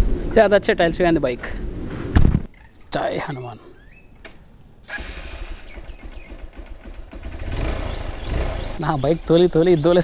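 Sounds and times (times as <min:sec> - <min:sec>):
motorcycle engine idling: 0:04.9 - 0:10.0.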